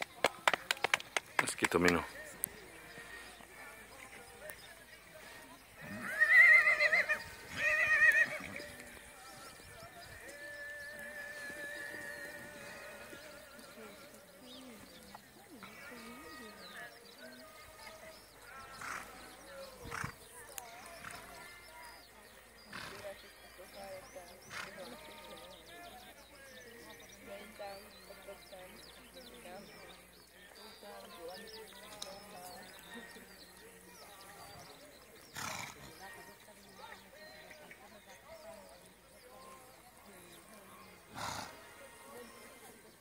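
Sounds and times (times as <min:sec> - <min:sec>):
horse whinnying: 0:05.8 - 0:08.6.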